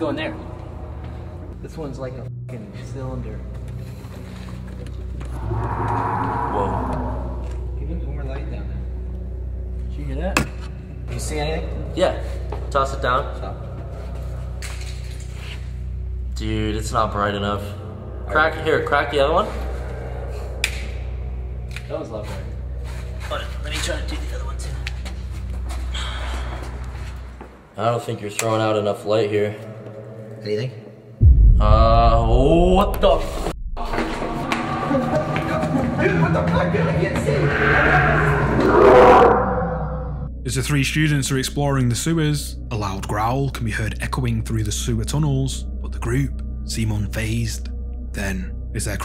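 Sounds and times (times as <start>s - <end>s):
loud echoing growl: 5.3s - 7.8s, 31.2s - 40.3s.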